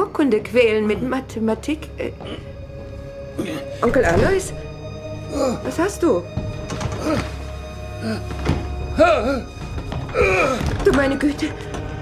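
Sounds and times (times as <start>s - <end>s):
low dark drone: 0.3s - 12.0s.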